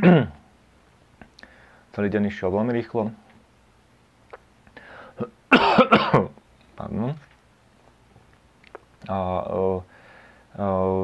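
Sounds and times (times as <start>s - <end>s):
man coughing: 0.0s - 0.4s, 5.2s - 6.4s.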